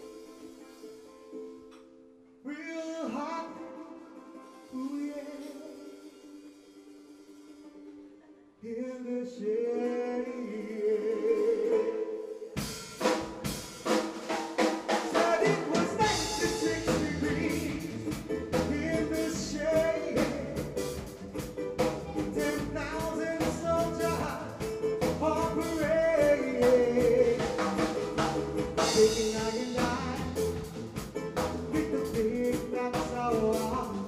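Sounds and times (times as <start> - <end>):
drum kit beat: 12.5 - 34.0
bass guitar: 15.2 - 34.0.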